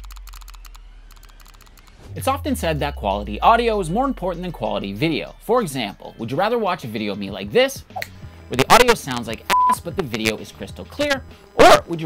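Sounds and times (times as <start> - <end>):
keyboard typing: 0.0 - 2.0
deep low drone: 0.0 - 5.4.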